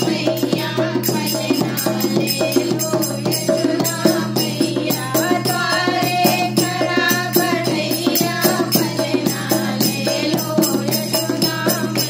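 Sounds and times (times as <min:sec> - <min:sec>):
hand drum beating quickly: 0:00.0 - 0:12.0
voices singing folk song: 0:00.0 - 0:12.0.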